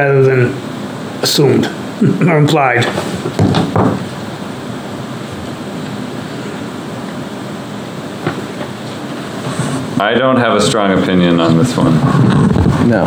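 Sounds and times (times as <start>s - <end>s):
ventilation hiss: 0.0s - 13.0s.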